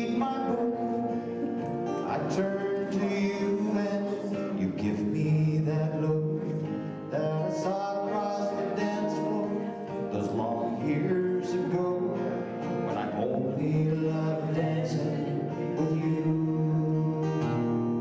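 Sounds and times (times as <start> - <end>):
acoustic guitars strumming: 0.0 - 18.0
person singing: 0.0 - 18.0.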